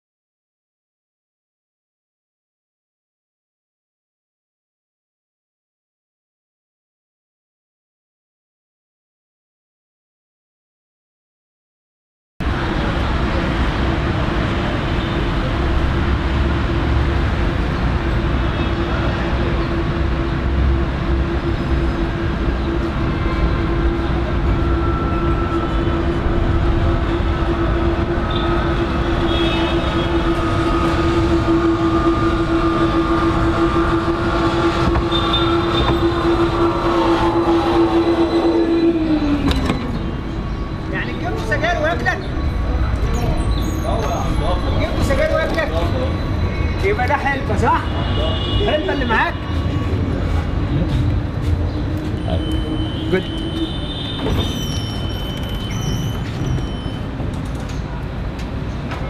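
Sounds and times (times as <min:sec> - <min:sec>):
electric tram whining and rumbling: 0:12.4 - 0:59.0.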